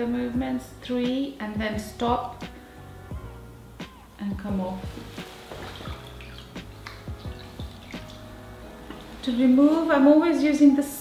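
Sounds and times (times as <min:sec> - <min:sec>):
soft background music: 0:00.0 - 0:11.0
water dripping into a bowl: 0:05.4 - 0:09.1.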